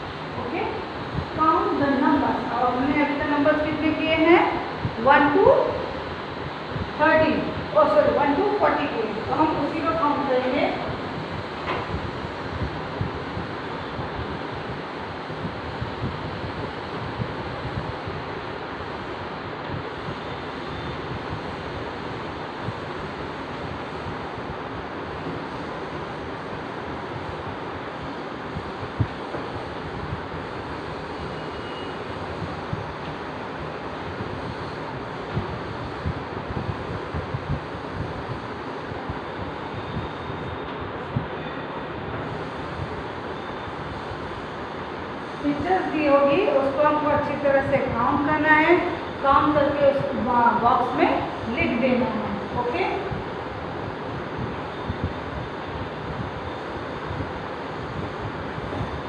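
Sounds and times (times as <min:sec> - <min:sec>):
steady background hiss: 0:00.0 - 0:59.0.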